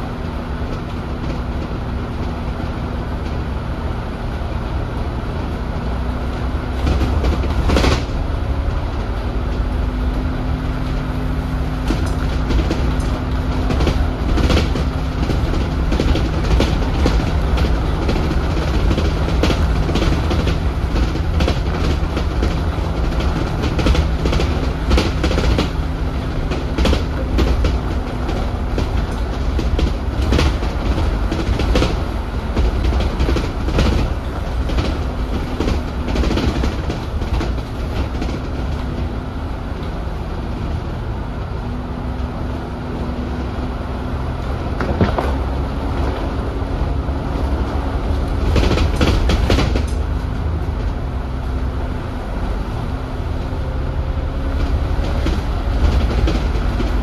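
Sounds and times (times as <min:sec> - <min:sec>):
bodywork clicks and rattles: 0:00.0 - 0:57.0
bus engine and road rumble: 0:00.0 - 0:57.0.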